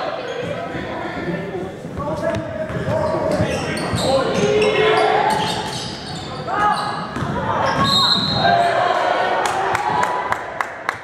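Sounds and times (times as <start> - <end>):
shouts and chatter: 4.0 - 10.6.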